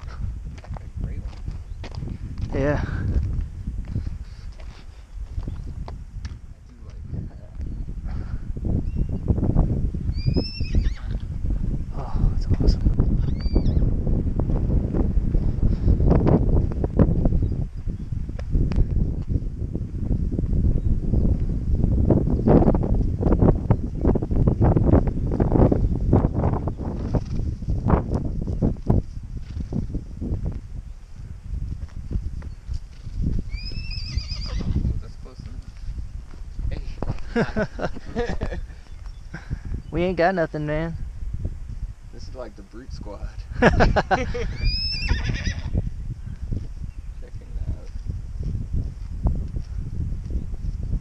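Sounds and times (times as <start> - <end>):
wind buffeting microphone: 0.0 - 51.0
pony whinnying: 10.2 - 11.3, 13.2 - 13.8, 33.5 - 34.8, 44.5 - 45.8.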